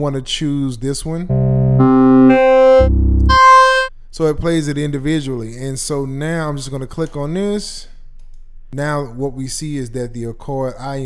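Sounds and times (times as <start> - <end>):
sustained synth notes: 1.3 - 3.9.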